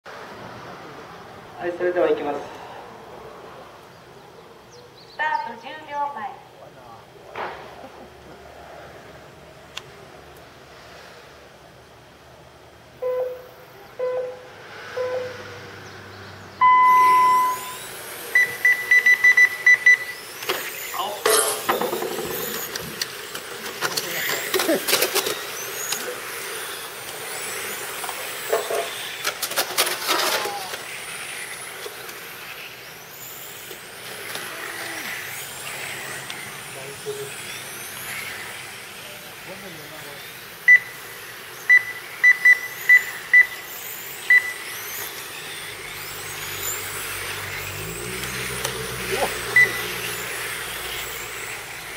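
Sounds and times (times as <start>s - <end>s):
radio-controlled cars motors whining: 7.0s - 51.9s
electronic countdown beeps: 13.0s - 15.4s, 16.6s - 17.8s, 18.4s - 20.2s, 40.7s - 41.0s, 41.7s - 43.6s, 44.3s - 44.6s, 49.5s - 49.9s
long high start tone: 16.6s - 20.2s.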